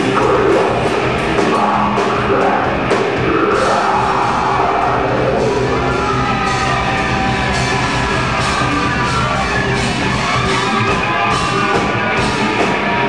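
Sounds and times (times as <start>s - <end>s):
distorted electric guitar: 0.0s - 13.0s
drums: 0.0s - 13.0s.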